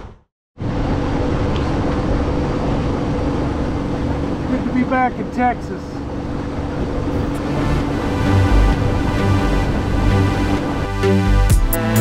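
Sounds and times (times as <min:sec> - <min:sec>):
wind: 0:00.0 - 0:11.1
boat engine droning: 0:00.6 - 0:12.0
water wash: 0:00.6 - 0:12.0.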